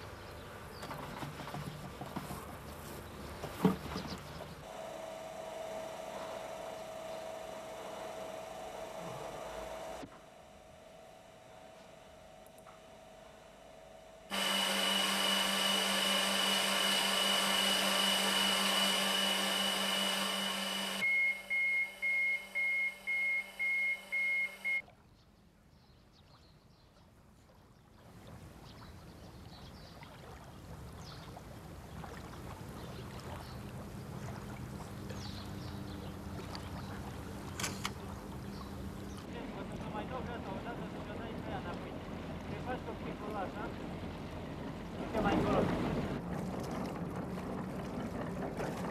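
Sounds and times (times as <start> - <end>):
equipment humming: 4.6 - 24.8, 33.8 - 46.2
high whine: 4.7 - 24.8
electronic beeps: 21.0 - 24.8.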